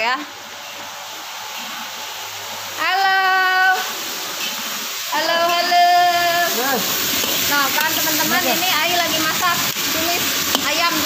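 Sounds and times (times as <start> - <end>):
woman calling out: 2.8 - 3.9, 5.1 - 6.9.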